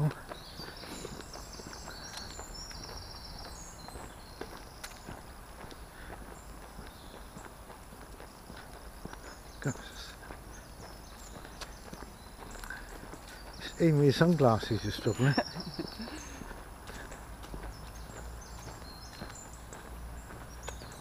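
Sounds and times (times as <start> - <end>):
distant road traffic hum: 0.0 - 21.0.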